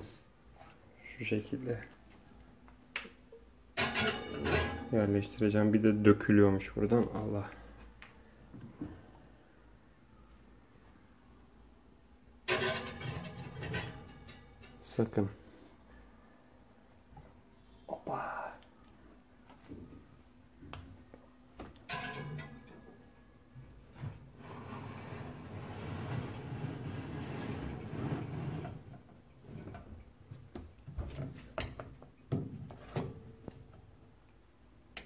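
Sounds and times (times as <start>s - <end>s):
glass jars clinking on metal rack: 3.8s - 5.2s, 12.5s - 15.0s, 21.8s - 23.0s.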